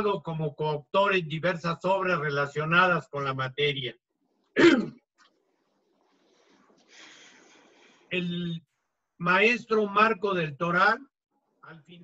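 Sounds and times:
man clearing throat: 0:04.6 - 0:05.0.

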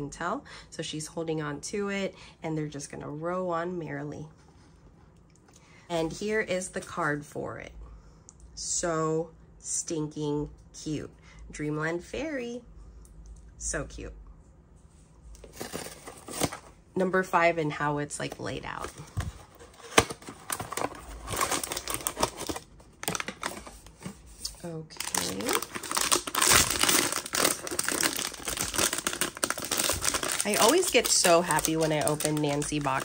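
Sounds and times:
cardboard box rustling: 0:15.4 - 0:16.7, 0:18.8 - 0:31.0
foil bag crinkling: 0:18.7 - 0:33.0.

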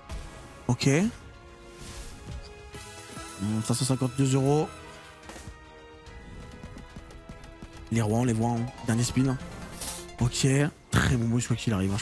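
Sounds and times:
slot game background music: 0:00.0 - 0:12.0.

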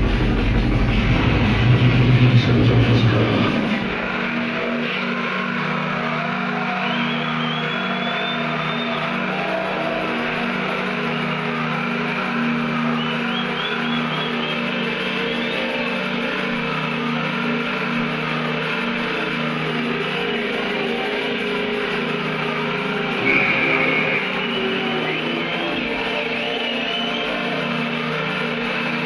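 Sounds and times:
low synth chords: 0:00.0 - 0:29.0.

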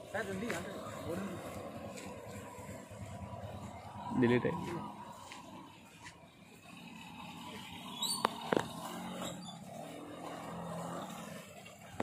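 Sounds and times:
motorcycle engine passing: 0:00.1 - 0:12.0.

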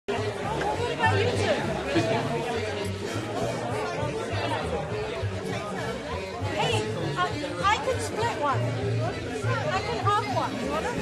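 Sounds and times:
crowd chatter: 0:00.1 - 0:11.0
music playing: 0:00.1 - 0:11.0.

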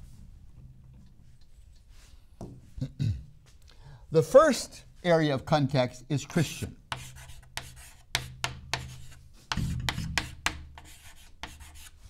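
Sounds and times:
chalk scratching on chalkboard: 0:06.9 - 0:12.0
chalk tapping on board: 0:06.9 - 0:12.0.

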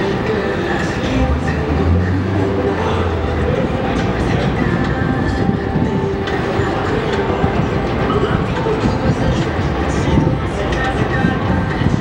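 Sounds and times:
busy street noise: 0:00.0 - 0:12.0
train rumbling with wheel clatter: 0:00.0 - 0:12.0.

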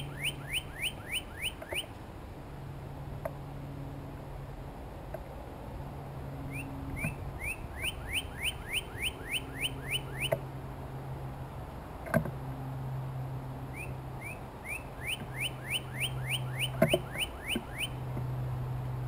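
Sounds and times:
bird singing whistled notes: 0:00.0 - 0:01.9, 0:06.5 - 0:10.4, 0:13.7 - 0:18.0.

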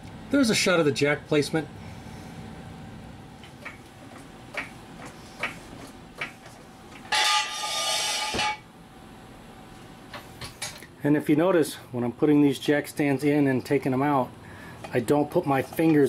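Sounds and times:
jack stand scraping on concrete: 0:07.1 - 0:08.6
sharp metal clunk: 0:07.1 - 0:08.6.

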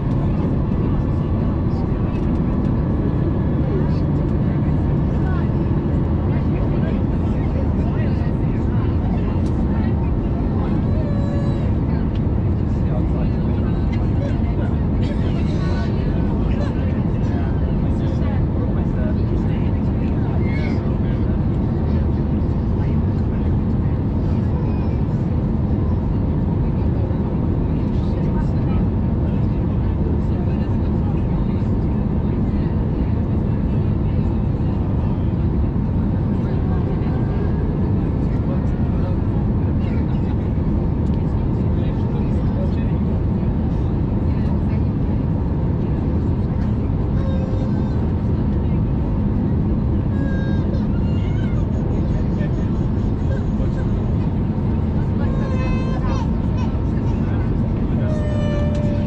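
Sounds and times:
airplane cabin drone: 0:00.0 - 0:59.0.

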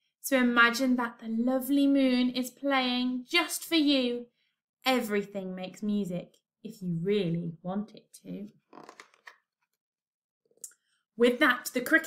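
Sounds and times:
paper page turning: 0:08.7 - 0:09.4.

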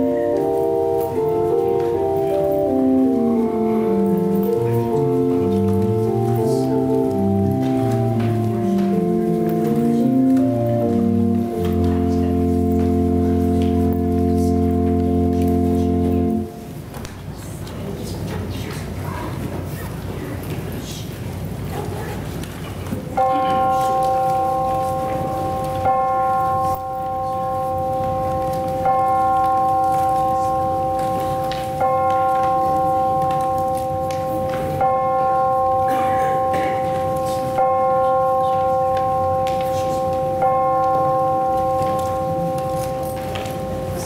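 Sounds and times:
church bell tolling: 0:00.0 - 0:17.0, 0:23.1 - 0:44.0.

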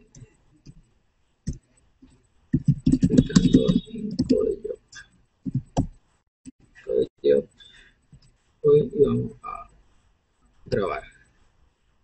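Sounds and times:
typing on computer keyboard: 0:02.6 - 0:04.6.

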